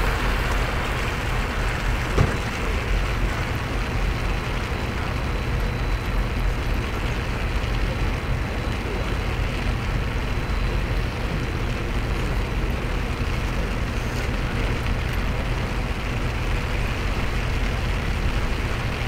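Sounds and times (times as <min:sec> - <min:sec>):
rain hiss: 0:00.0 - 0:19.0.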